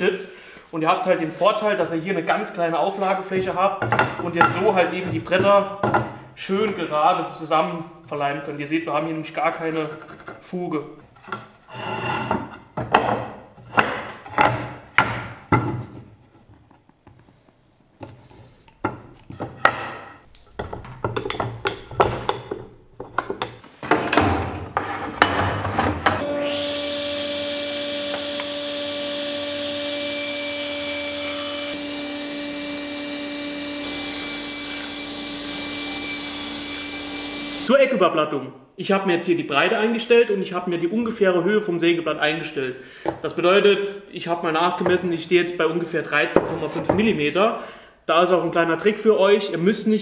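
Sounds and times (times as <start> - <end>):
wooden boards knocking and scraping: 12.2 - 16.1, 18.8 - 26.2.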